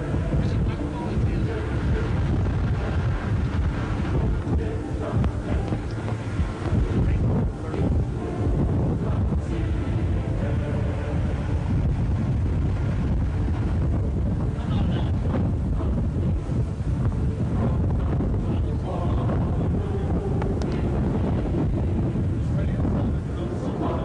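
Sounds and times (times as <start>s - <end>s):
faint indistinct voices: 0.0s - 12.0s, 14.4s - 24.0s
wind buffeting microphone: 0.0s - 24.0s.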